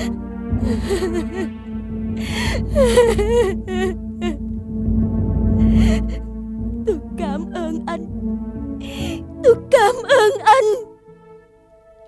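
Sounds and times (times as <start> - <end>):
woman sobbing: 0.0 - 4.6, 5.6 - 8.1, 8.8 - 10.9
held note of background music: 0.0 - 12.0.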